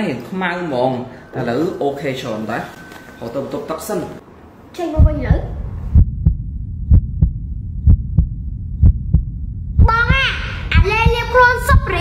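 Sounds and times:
heartbeat-style bass thumps: 0:05.0 - 0:12.0
low hum: 0:05.0 - 0:12.0.

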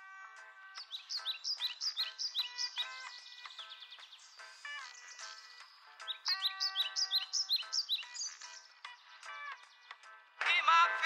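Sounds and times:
birds chirping: 0:00.0 - 0:10.8.

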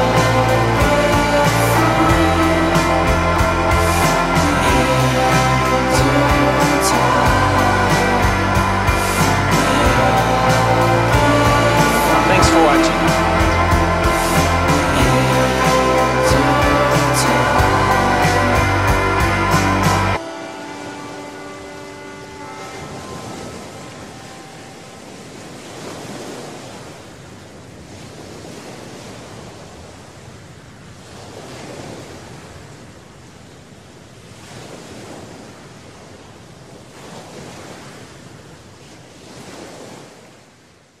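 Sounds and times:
surf washing in and out: 0:00.0 - 0:41.0
music notes ringing out: 0:17.8 - 0:25.6.

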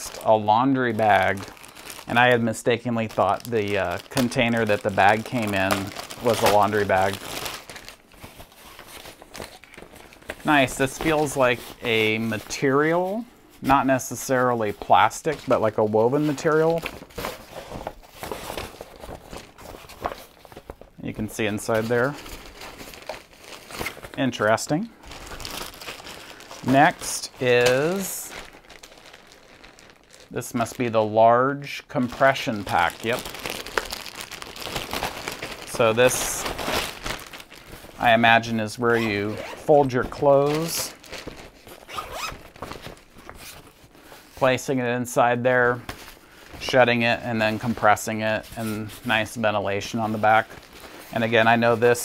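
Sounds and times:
fabric bag rustling: 0:00.0 - 0:13.7, 0:14.4 - 0:31.0, 0:32.0 - 0:44.5
zipper being pulled open: 0:41.8 - 0:42.3.

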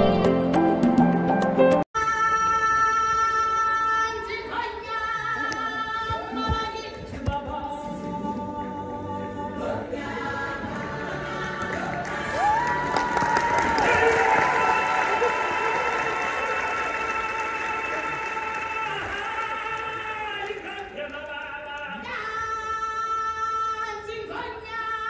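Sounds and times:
choral singing: 0:07.4 - 0:13.2.

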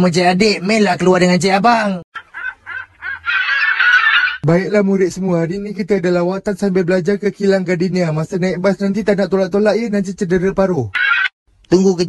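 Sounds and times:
cartoon seagulls squawking: 0:02.2 - 0:04.4, 0:10.9 - 0:11.4.

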